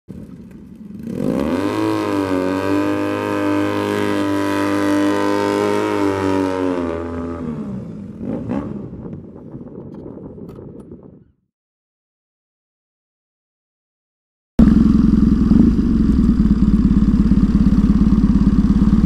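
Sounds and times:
motorcycle engine revving: 0.1s - 9.4s, 14.6s - 19.0s.

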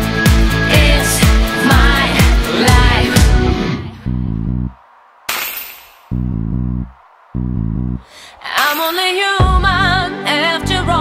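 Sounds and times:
electric bass guitar riff: 6.2s - 8.1s.

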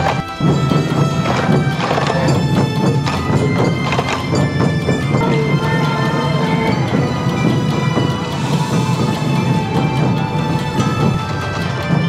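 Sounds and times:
drums struck with sticks: 0.0s - 12.0s
flute melody: 0.0s - 12.0s.

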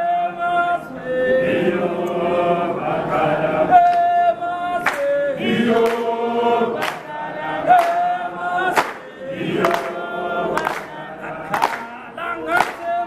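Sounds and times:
choir singing sustained notes: 0.0s - 13.0s.

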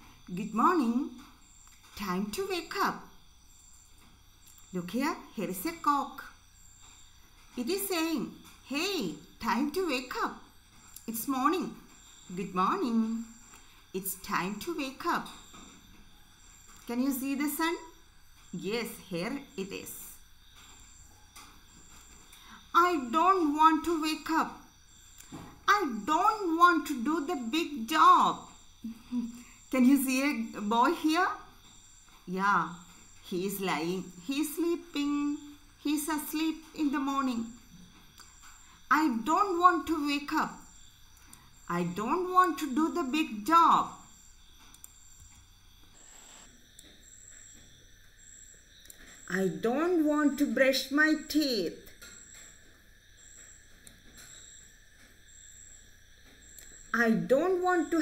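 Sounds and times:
low hum and hiss: 0.0s - 58.0s
faint ticks: 37.7s - 38.8s, 44.6s - 49.3s, 51.8s - 56.9s.

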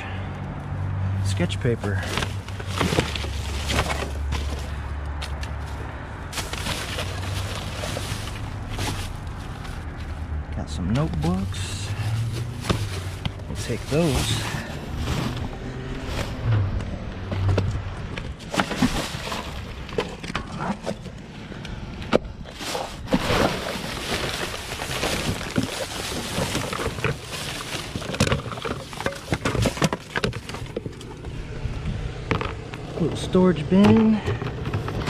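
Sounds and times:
plastic and paper rustling: 1.8s - 4.8s, 5.6s - 16.4s, 18.2s - 21.1s, 22.5s - 31.4s
objects knocking and clicking: 23.1s - 31.4s.

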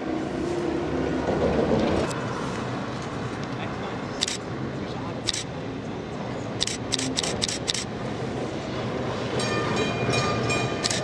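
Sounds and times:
bus driving past: 0.0s - 11.0s.

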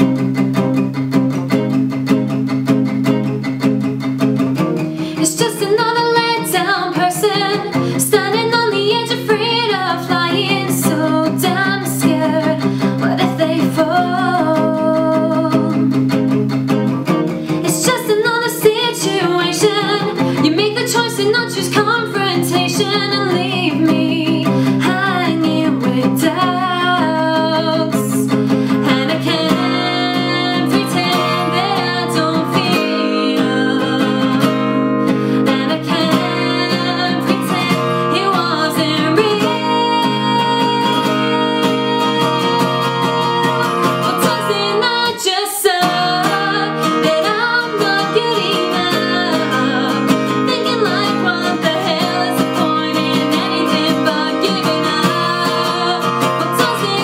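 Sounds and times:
acoustic guitar strumming: 0.0s - 57.0s
woman singing: 5.0s - 16.5s, 17.5s - 57.0s.

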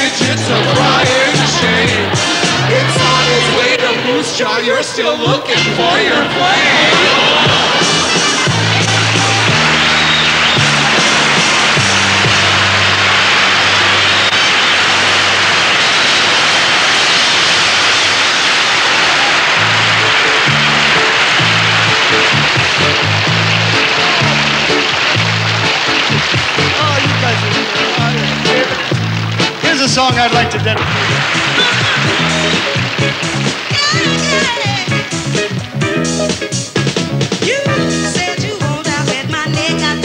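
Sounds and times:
stepping bass line: 0.0s - 3.7s, 6.8s - 14.4s, 19.6s - 40.0s
audience applauding and cheering: 0.0s - 38.6s
band playing: 0.0s - 40.0s.

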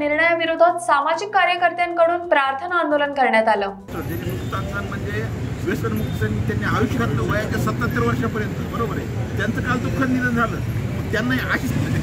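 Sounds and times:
men talking: 3.9s - 12.0s.

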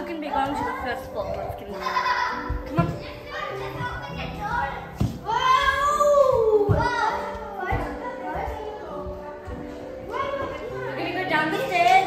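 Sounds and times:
children playing and calling out: 0.0s - 11.2s
background music: 0.0s - 12.0s.

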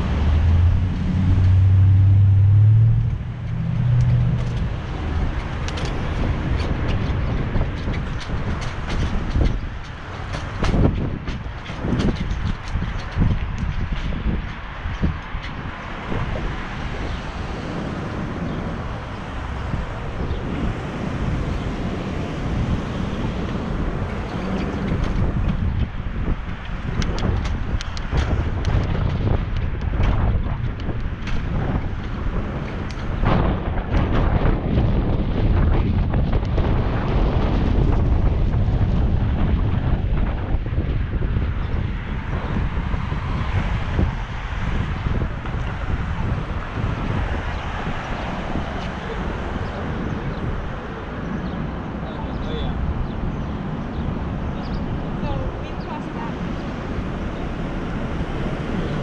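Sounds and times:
street traffic: 0.0s - 59.0s
wind rushing over microphone: 0.0s - 59.0s
bicycle knocks and rattles: 3.1s - 17.2s, 22.2s - 49.0s.

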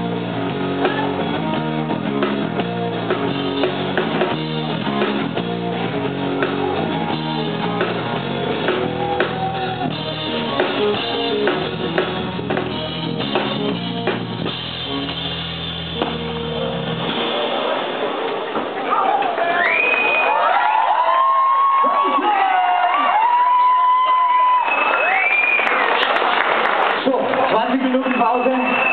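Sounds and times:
live rock band playing: 0.0s - 18.4s
audience cheering: 5.8s - 11.1s, 17.1s - 28.9s
loud whistles: 19.4s - 20.5s, 24.3s - 25.9s, 27.9s - 28.9s.

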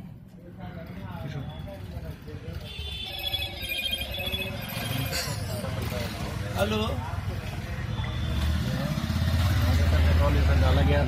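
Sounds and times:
mobile phone ringtone trilling: 3.0s - 5.4s.

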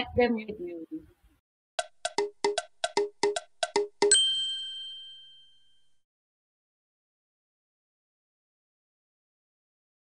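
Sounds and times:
bright bell-like ding: 4.0s - 6.0s.

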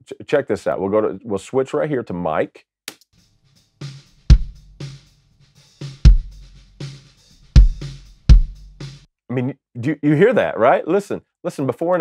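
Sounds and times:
kick drum hits: 4.3s - 4.6s, 6.0s - 6.4s, 7.6s - 8.8s.

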